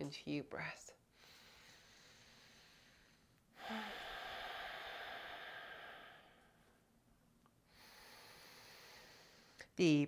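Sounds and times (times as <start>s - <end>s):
woman breathing deeply: 1.1s - 6.9s, 7.6s - 9.7s.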